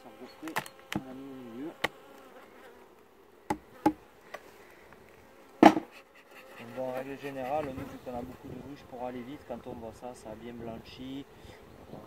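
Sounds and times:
bees buzzing: 0.0s - 12.0s
wooden knocks: 5.6s - 5.9s.

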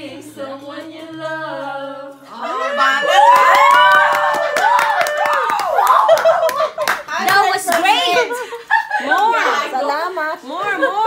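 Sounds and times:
people clapping: 3.0s - 8.4s, 9.0s - 9.6s.

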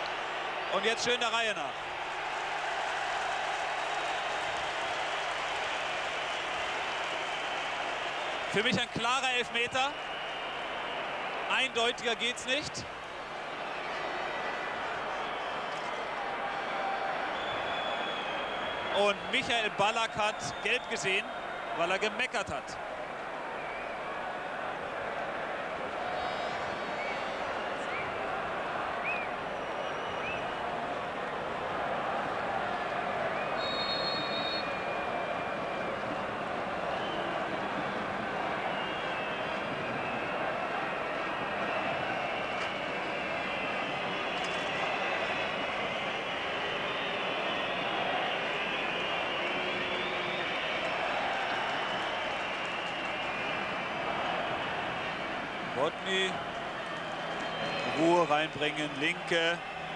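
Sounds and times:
stadium crowd noise: 0.0s - 59.9s.

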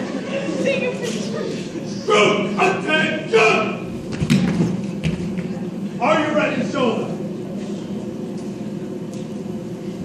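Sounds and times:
men shouting in a hall: 2.0s - 3.9s.

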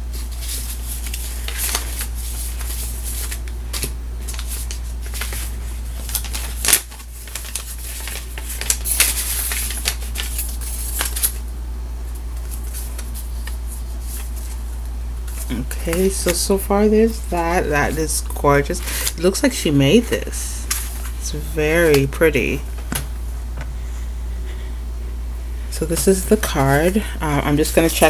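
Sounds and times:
steady low hum: 0.0s - 28.0s
paper rustling and scraping: 0.1s - 11.4s, 12.3s - 14.7s, 15.3s - 19.3s, 19.9s - 23.1s.

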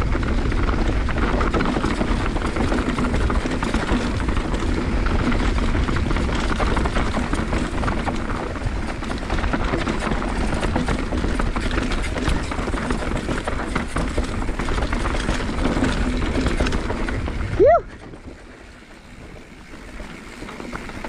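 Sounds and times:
bike chain rattling and clicking: 0.0s - 21.0s
bike tyres rolling over dirt: 0.0s - 21.0s
wind rumble on microphone: 0.0s - 21.0s.

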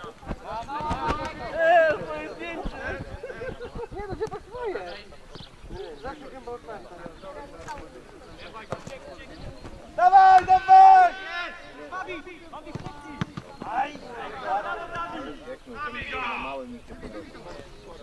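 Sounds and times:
voices calling over one another: 0.0s - 18.0s
men shouting: 10.0s - 12.4s.

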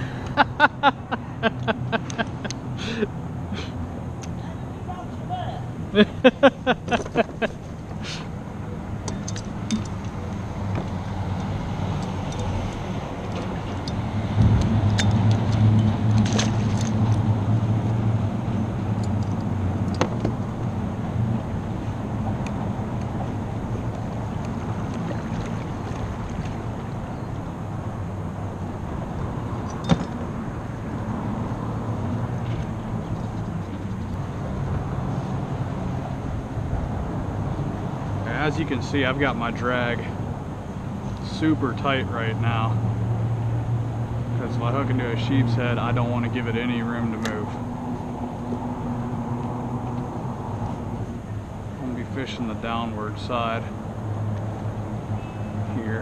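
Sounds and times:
low engine hum: 0.0s - 56.0s.

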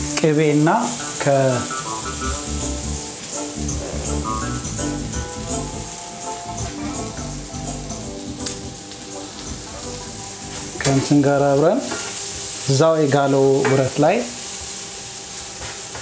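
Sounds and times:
background music: 0.0s - 12.3s
onions sizzling in oil: 0.0s - 16.0s.

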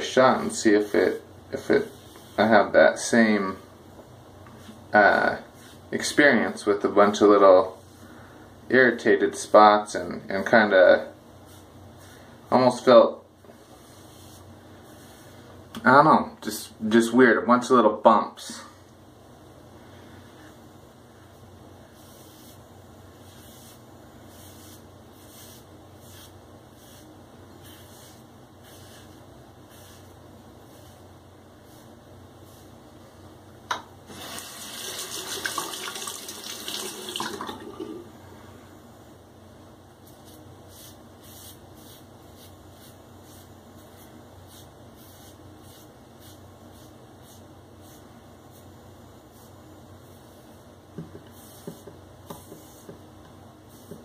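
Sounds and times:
razor scraping on scalp: 23.2s - 31.0s, 40.2s - 48.7s.

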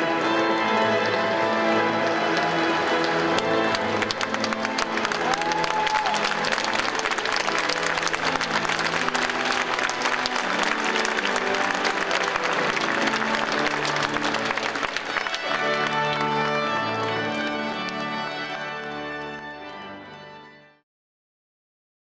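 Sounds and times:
crowd applauding: 0.0s - 20.5s
instrumental music: 0.0s - 20.8s.

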